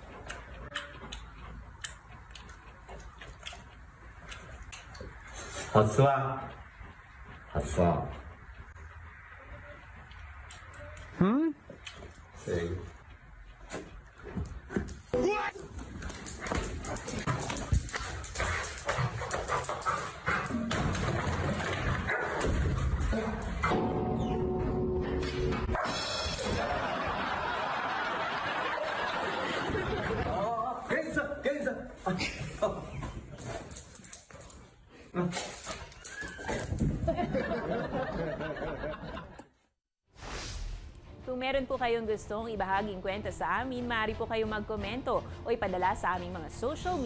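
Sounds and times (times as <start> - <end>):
people talking: 41.3 - 47.0.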